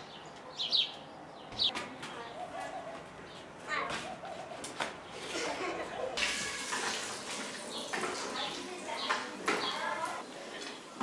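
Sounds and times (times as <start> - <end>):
water running from a tap: 6.2 - 10.5.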